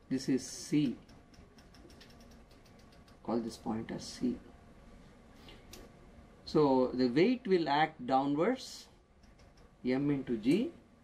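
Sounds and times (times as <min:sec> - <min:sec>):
faint rapid ticking: 0:00.8 - 0:03.3.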